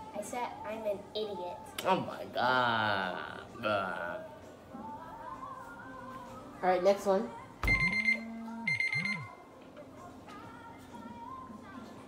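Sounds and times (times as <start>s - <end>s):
pulsing electronic alarm tone: 7.7s - 9.3s.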